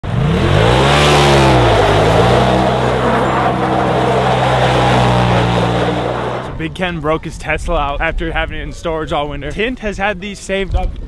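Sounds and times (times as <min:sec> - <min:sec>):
vehicle engine revving: 0:00.0 - 0:06.8.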